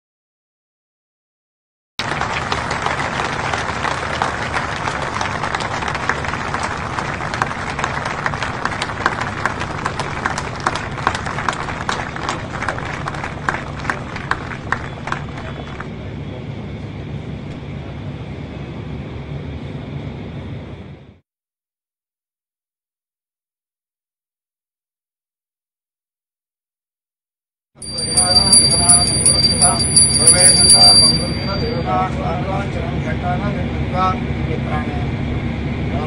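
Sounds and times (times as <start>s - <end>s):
crowd clapping: 2.0s - 15.9s, 27.8s - 31.8s
outdoor background noise: 2.0s - 21.2s.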